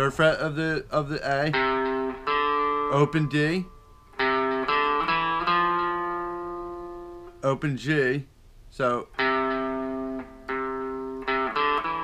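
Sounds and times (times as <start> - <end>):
electric guitar notes picked: 0.0 - 7.5, 9.1 - 12.0.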